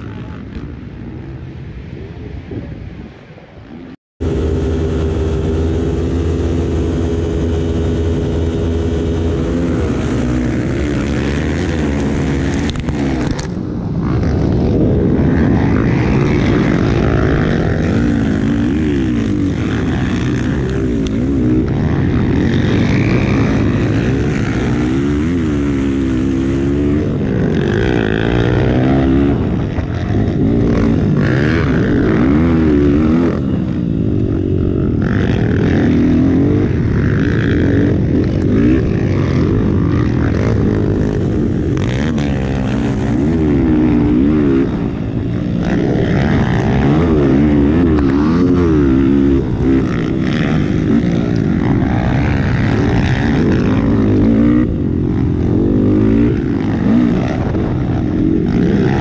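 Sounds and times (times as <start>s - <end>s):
motocross bike engine revving: 4.2s - 59.0s.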